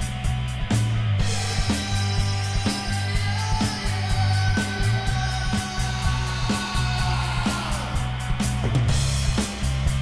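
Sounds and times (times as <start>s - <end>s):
rock band playing live: 0.0s - 10.0s.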